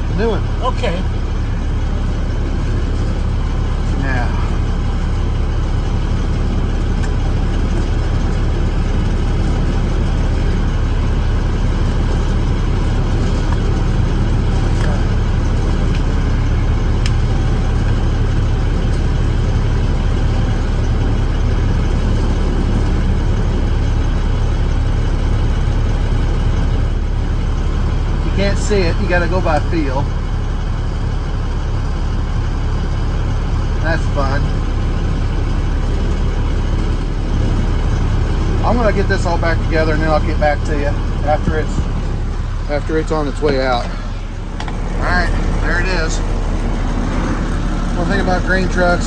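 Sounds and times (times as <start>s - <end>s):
truck engine idling: 0.0s - 49.0s.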